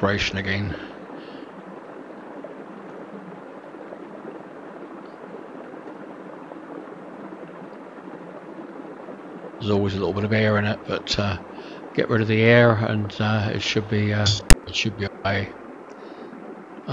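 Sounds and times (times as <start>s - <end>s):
water rushing and spilling: 0.0s - 16.9s.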